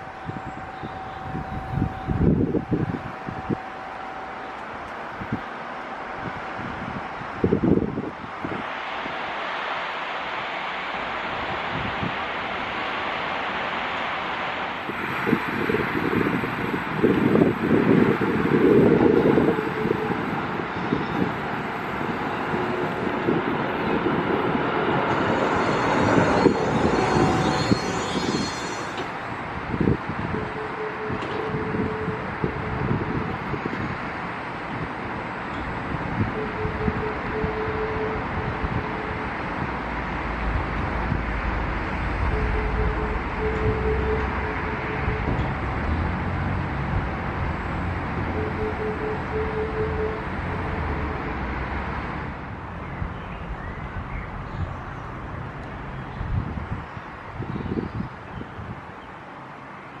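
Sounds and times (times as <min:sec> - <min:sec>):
wind buffeting microphone: 0:00.0 - 0:09.2, 0:11.1 - 0:13.2, 0:14.8 - 0:59.0
high electric whine: 0:00.0 - 0:51.4
tram wheels rumbling on rails: 0:00.0 - 1:00.0.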